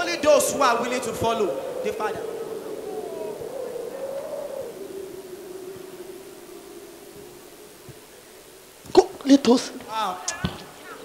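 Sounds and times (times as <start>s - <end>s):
steady wavering tone: 0.0s - 8.9s
faint hiss: 0.0s - 11.0s.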